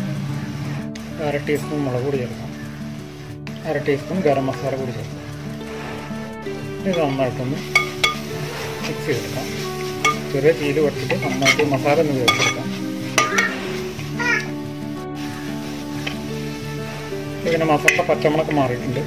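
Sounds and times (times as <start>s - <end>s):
background music: 0.0s - 19.0s
food sizzling: 0.0s - 19.0s
spatula scraping metal pan: 5.5s - 14.6s, 15.2s - 18.5s
spatula clicking against pan: 11.0s - 13.6s.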